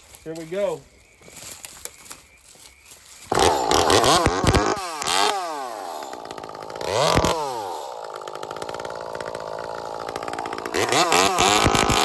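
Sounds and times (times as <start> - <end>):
chainsaw idling and revving: 3.3 - 12.0.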